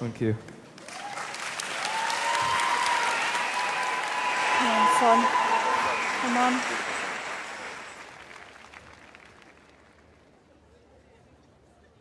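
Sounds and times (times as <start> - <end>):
audience applause: 0.7 - 10.2.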